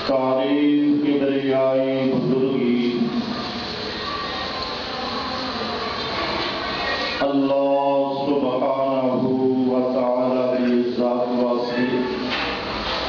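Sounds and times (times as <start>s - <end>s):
man chanting over loudspeaker: 0.0s - 3.7s, 7.2s - 12.6s
steady noisy wash: 0.0s - 13.0s.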